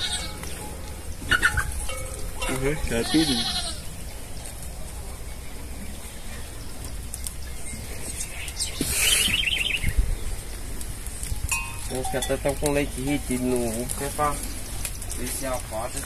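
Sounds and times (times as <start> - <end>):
goat bleating: 0.0 - 0.5, 2.8 - 4.0.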